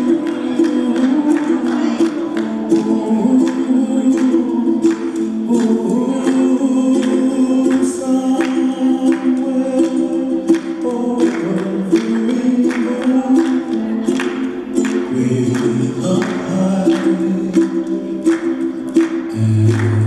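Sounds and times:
song with singing and steady beat: 0.0 - 20.0.

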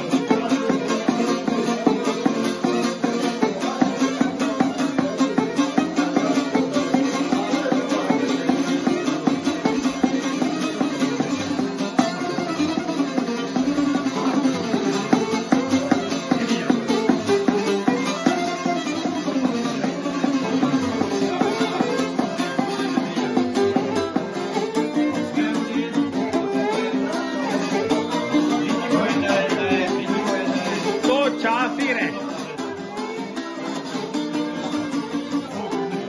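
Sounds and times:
plucked lute pick strokes: 0.0 - 36.0
violin melody: 0.0 - 36.0.

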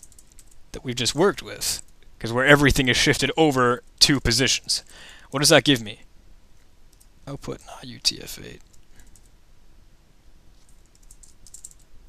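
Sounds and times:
typing on a computer keyboard: 0.0 - 0.6, 10.7 - 11.9.

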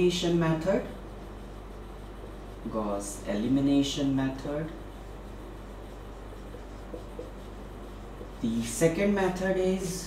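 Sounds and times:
marker writing on whiteboard: 0.0 - 10.0
steady low hum: 0.0 - 10.0.

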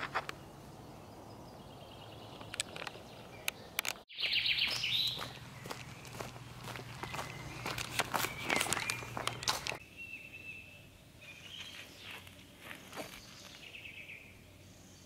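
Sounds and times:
birds chirping: 0.0 - 15.0
footsteps on dirt path: 4.1 - 9.8, 11.5 - 13.8.

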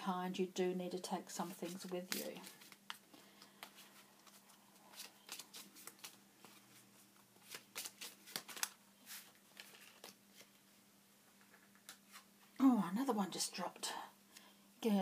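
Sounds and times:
cards being shuffled: 1.4 - 10.6.

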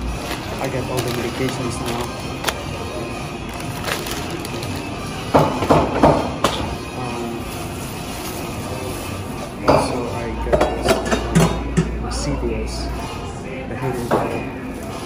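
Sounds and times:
plastic bag rustling: 0.0 - 5.0
steady background hum: 0.0 - 15.0.

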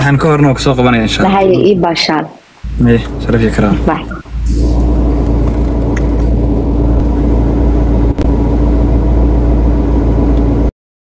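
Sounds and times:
car engine rumble inside cabin: 2.6 - 10.7.

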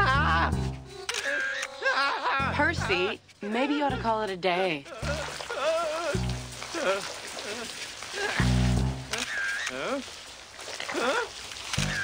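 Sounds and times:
background music: 0.0 - 7.6, 8.2 - 9.7
person's wordless vocal sounds: 4.8 - 8.6, 9.7 - 10.2, 10.8 - 11.4
short deep notes: 8.4 - 9.2.

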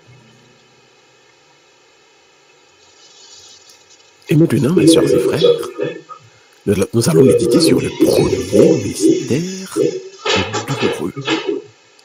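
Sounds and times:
faint steady hum: 0.0 - 12.0
hymn singing: 4.3 - 11.6.

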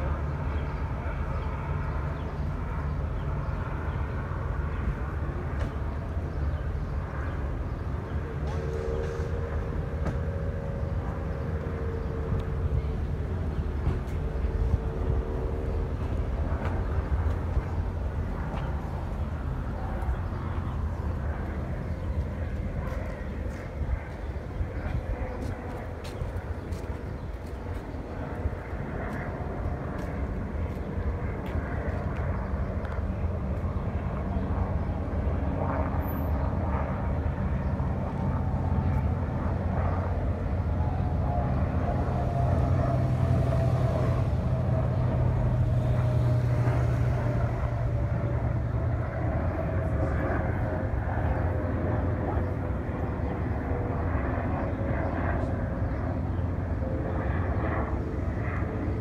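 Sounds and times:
airplane engine rumble: 0.0 - 59.0.

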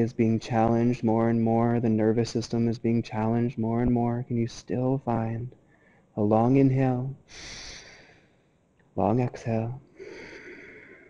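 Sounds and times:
man's long in-breath: 7.3 - 8.3, 10.0 - 11.0.

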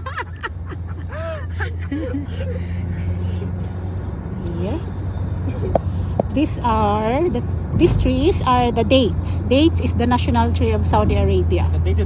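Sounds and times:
car cabin drone: 0.0 - 12.0.

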